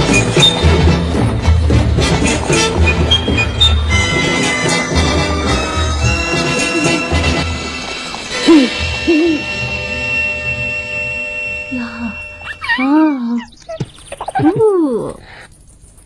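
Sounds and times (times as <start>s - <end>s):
music with long held tones: 0.0s - 12.6s
woman cooing: 11.8s - 13.6s, 14.4s - 15.2s.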